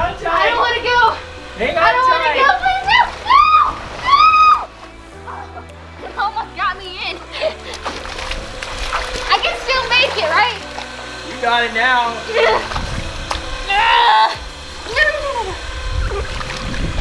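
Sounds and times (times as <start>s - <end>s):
background music: 0.0s - 17.0s
water splashing and sloshing: 0.6s - 13.7s, 14.4s - 17.0s.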